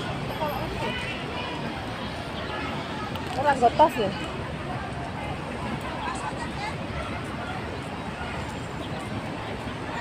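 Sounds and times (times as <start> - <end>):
people talking: 0.0 - 10.0
traffic noise: 0.0 - 10.0.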